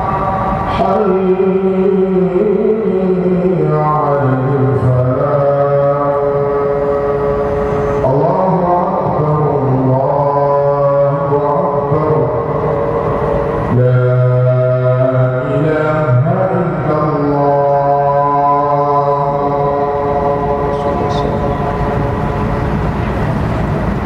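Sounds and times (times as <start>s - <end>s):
man chanting: 0.0s - 23.2s.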